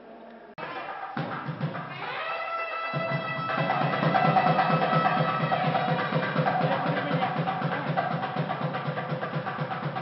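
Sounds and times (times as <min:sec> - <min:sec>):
percussion-heavy music: 0:00.6 - 0:10.0.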